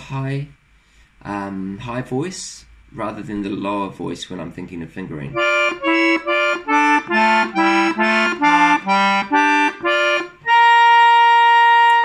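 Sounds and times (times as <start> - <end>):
accordion playing chords: 5.3 - 12.0.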